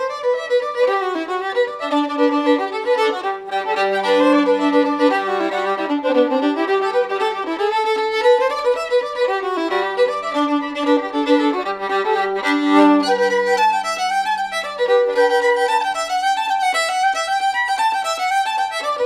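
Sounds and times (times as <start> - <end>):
fiddle buzz: 0.0 - 19.0
fiddle playing old-time tune: 0.0 - 19.0.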